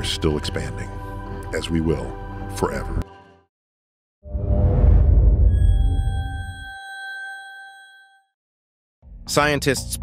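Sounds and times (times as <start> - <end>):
bright ringing chime: 5.4 - 8.4.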